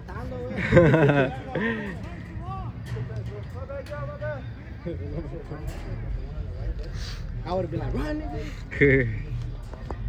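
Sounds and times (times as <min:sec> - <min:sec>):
distant men calling and talking: 0:00.0 - 0:10.0.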